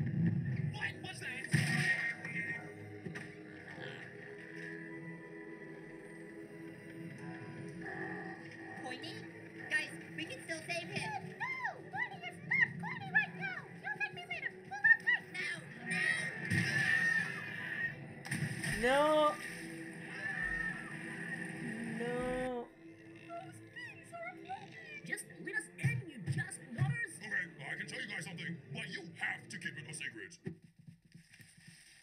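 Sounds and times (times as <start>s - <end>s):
background music: 0.0s - 30.3s
cartoon character voices: 11.2s - 17.8s.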